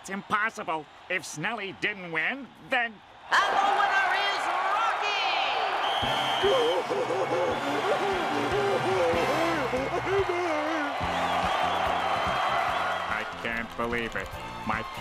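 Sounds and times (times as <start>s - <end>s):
cartoon crowd cheering: 2.8s - 15.0s.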